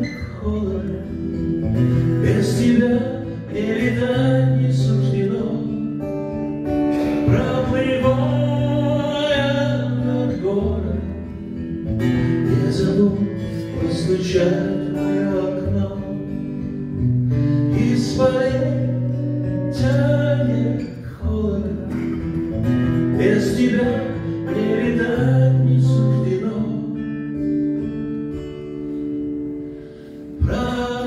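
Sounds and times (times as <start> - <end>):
acoustic guitar strumming: 0.0 - 31.0.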